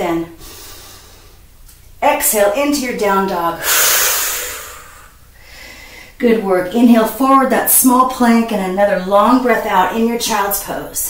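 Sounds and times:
woman exhaling: 0:03.6 - 0:06.2.

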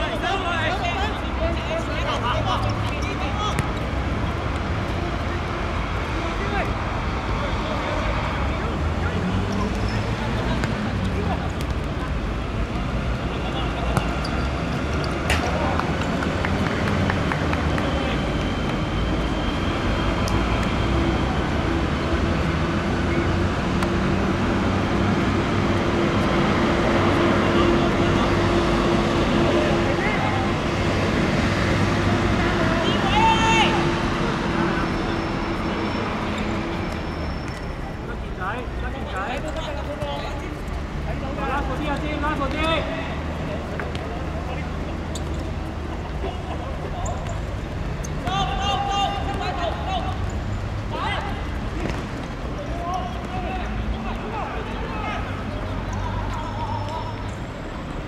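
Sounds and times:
road traffic noise: 0:00.0 - 0:58.0
players shouting: 0:32.0 - 0:37.1, 0:41.2 - 0:57.6.

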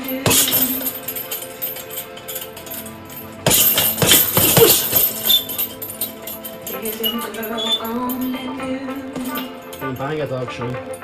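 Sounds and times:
background music with gliding melody: 0:00.0 - 0:11.0.

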